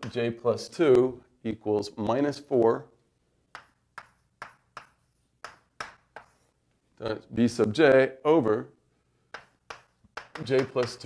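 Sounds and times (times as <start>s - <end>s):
chalk tapping on a board: 3.5s - 6.5s, 9.3s - 11.0s.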